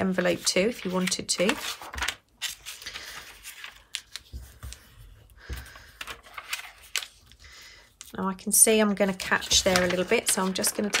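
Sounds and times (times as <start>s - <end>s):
tracing paper rustling and crinkling: 0.0s - 11.0s
sharp paper crackles: 0.4s - 4.8s, 5.7s - 7.4s, 9.2s - 11.0s.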